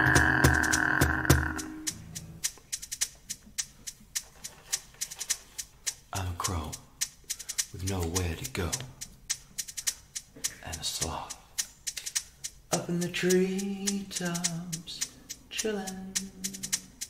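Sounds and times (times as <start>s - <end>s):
drum machine beat: 0.0s - 17.0s.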